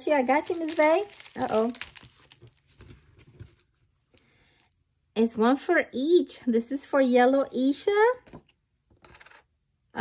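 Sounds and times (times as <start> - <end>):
plastic items rustling and clicking: 0.0 - 3.6.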